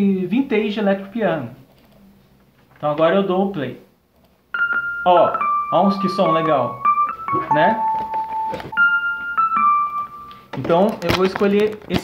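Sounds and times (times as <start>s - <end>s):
electric piano notes: 4.5s - 11.1s.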